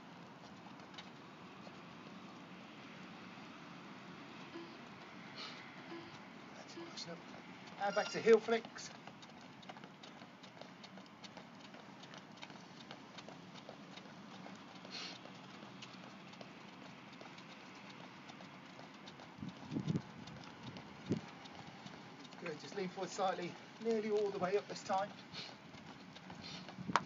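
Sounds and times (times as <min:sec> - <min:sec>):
footfalls on paving stones: 0:07.1 - 0:27.0.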